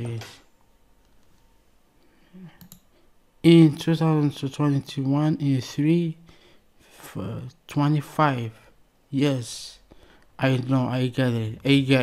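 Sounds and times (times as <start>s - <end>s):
faint clicks: 2.6s - 2.9s.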